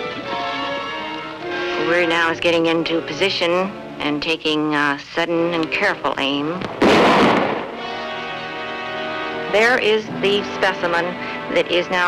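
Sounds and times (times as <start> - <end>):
background music chord: 0.0 - 6.6, 7.5 - 12.0
rifle shot: 6.6 - 8.0.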